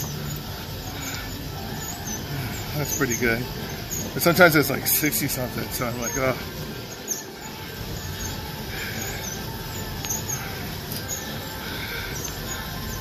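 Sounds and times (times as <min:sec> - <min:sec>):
exercise bike whirring: 0:00.0 - 0:13.0.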